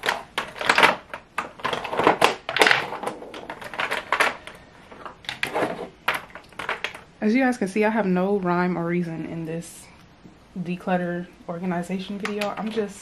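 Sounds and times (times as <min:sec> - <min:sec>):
plastic tubes clicking and clattering: 0:00.0 - 0:07.1.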